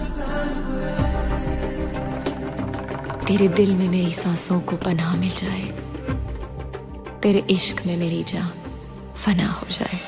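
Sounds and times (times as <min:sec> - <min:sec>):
soft song music: 0:00.0 - 0:10.0.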